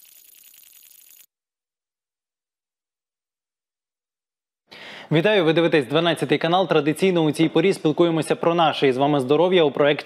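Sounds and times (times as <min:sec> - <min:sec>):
rapid rattling shimmer: 0:00.0 - 0:01.3.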